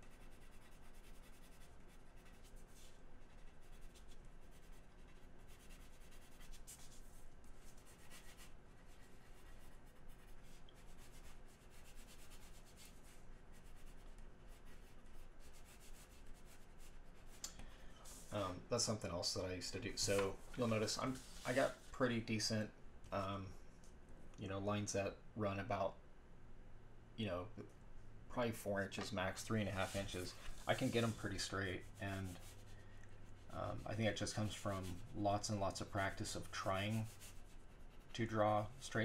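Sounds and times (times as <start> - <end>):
pencil scratching on paper: 0.0 - 17.4, 29.5 - 39.0.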